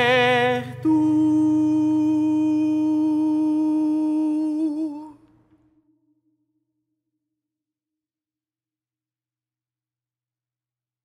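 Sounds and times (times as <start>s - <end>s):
long held sung note: 0.0s - 5.2s
low sustained tone: 0.0s - 5.2s.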